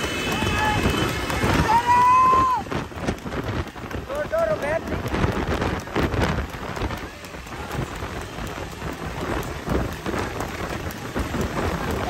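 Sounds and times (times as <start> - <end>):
horse hooves and cart knocks: 0.0 - 12.0
motorcycle engines running: 0.0 - 12.0
wind on microphone: 0.0 - 12.0.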